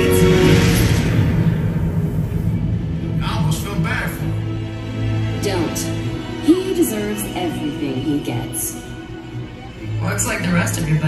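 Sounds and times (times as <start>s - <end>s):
deep rumbling sound effect: 0.0s - 5.6s.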